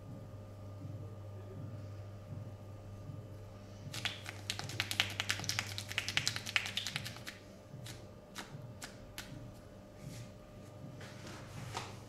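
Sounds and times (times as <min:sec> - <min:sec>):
hands tapping on head: 0:03.9 - 0:09.5.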